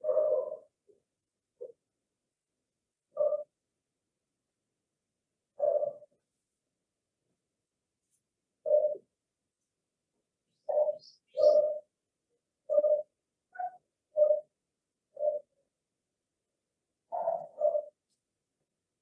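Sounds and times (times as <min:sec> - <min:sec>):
dove cooing: 0:00.0 - 0:01.0, 0:03.1 - 0:03.6, 0:05.6 - 0:06.2, 0:08.6 - 0:09.1, 0:10.5 - 0:11.9, 0:12.6 - 0:15.6, 0:17.1 - 0:18.0.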